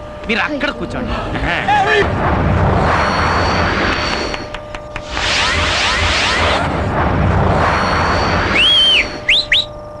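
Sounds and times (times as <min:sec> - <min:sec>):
rumbling action noise: 0:01.1 - 0:09.6
whistle: 0:07.6 - 0:09.9.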